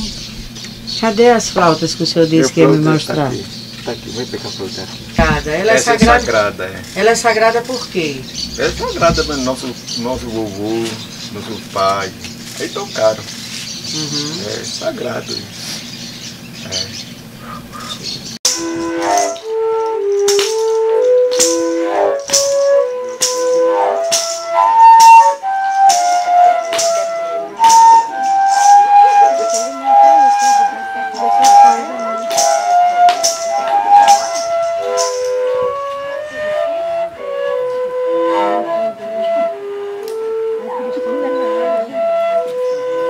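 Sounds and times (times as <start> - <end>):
long flutes playing together: 2.4 - 13.2, 18.5 - 43.0
sharp beat: 5.0 - 11.8.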